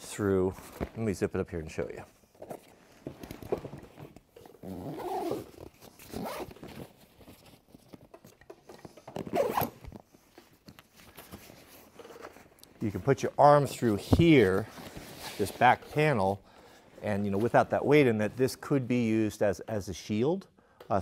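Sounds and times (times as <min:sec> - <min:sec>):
backpack zipper closing: 0:04.5 - 0:06.9, 0:09.2 - 0:10.0.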